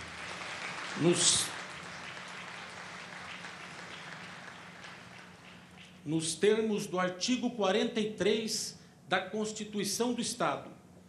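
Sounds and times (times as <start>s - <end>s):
audience applause: 0.0s - 6.0s.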